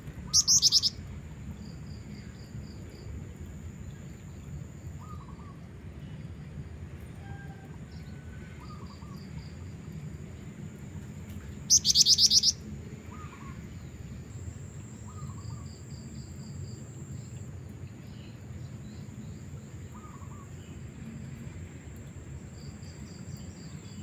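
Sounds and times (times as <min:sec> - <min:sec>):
steady low background noise: 0:00.0 - 0:24.0
bird rapid high trill: 0:00.3 - 0:01.0, 0:11.7 - 0:12.6
faint bird chirps: 0:00.3 - 0:01.0, 0:04.4 - 0:05.6, 0:11.7 - 0:13.9, 0:14.9 - 0:15.9, 0:18.0 - 0:20.8.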